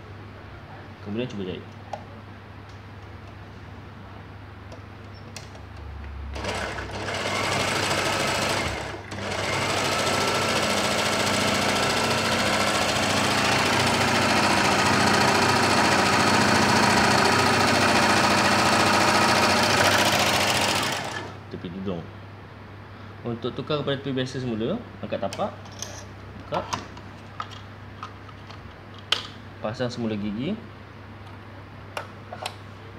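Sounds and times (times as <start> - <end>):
overlocker stitching: 6.3 - 21.4.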